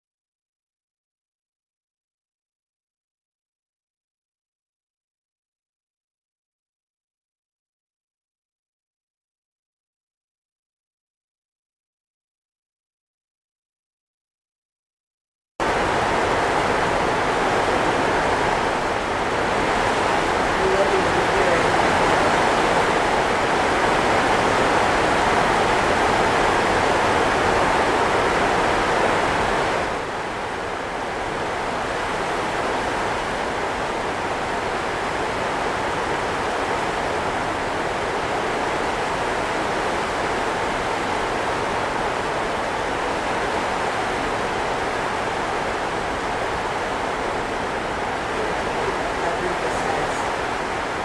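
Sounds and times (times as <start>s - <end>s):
steady rushing noise: 15.6s - 51.0s.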